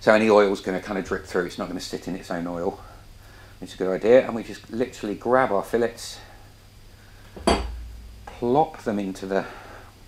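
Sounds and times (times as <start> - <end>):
kitchenware clinking: 7.4 - 7.8
low thud: 7.4 - 8.4.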